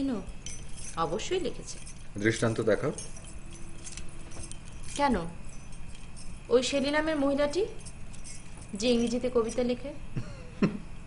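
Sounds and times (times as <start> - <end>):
bangles jingling: 0.0 - 11.0.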